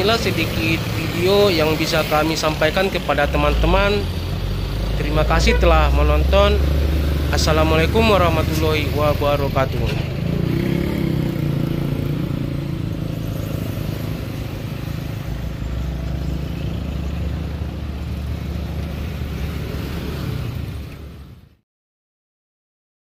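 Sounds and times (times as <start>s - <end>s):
low engine rumble: 0.0s - 10.5s, 11.9s - 19.7s
cars passing: 0.0s - 21.6s
road noise: 0.0s - 21.6s.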